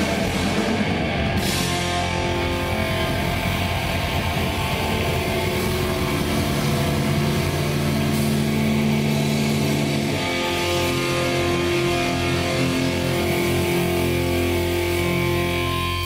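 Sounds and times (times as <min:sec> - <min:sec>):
distorted electric guitars: 0:00.0 - 0:16.0
drum kit: 0:00.0 - 0:16.0.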